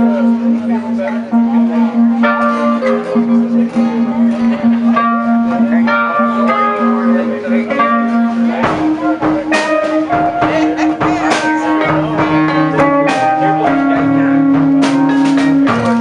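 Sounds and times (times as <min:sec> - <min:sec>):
blues band playing: 0:00.0 - 0:16.0
guitar strumming: 0:00.0 - 0:16.0
mandolin: 0:00.0 - 0:16.0.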